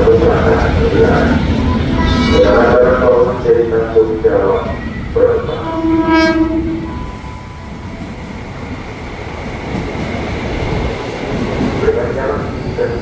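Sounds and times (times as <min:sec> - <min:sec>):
train rumbling past: 0:00.0 - 0:13.0
electric train horn: 0:01.8 - 0:03.2, 0:05.2 - 0:07.3.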